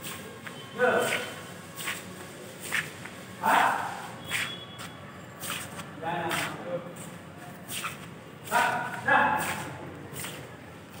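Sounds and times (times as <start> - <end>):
footsteps shuffling on stone: 4.2 - 11.0.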